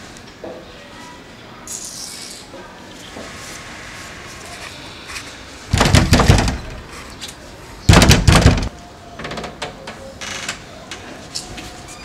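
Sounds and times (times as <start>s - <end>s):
fists pounding on wooden door: 5.7s - 6.8s, 7.9s - 8.7s.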